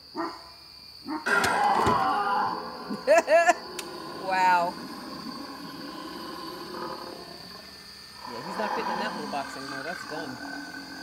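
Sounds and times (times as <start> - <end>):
animatronic prop growling and roaring: 3.6 - 11.0.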